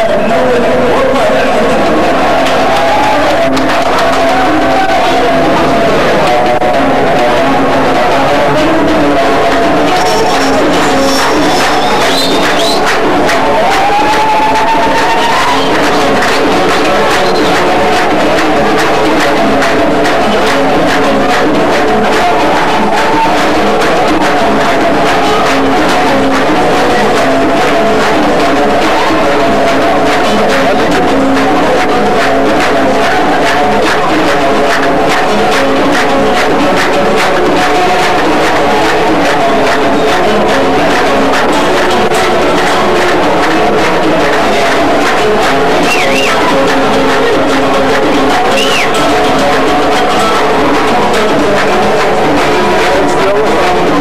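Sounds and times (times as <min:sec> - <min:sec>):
audience noise: 0:00.0 - 0:54.0
banjo: 0:00.0 - 0:54.0
guitar strumming: 0:00.5 - 0:54.0
hand drums: 0:08.0 - 0:54.0.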